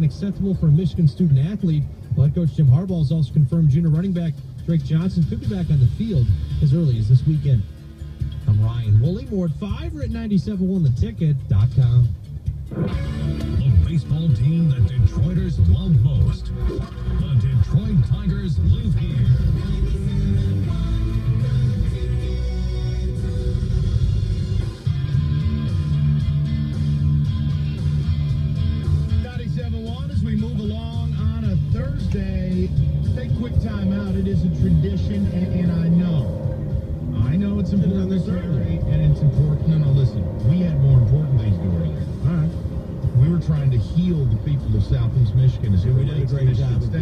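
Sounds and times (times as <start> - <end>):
guitar music on car radio: 0.0 - 47.0.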